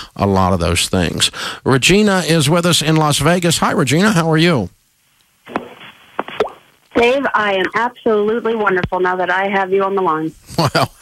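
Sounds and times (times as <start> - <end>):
telephone line hiss: 5.4 - 10.2.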